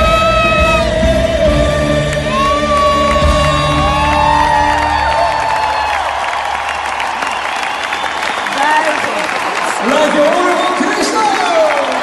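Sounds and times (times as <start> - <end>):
live band playing: 0.0 - 5.3
singer holding long notes: 0.0 - 6.0
crowd clapping and cheering: 0.0 - 12.0.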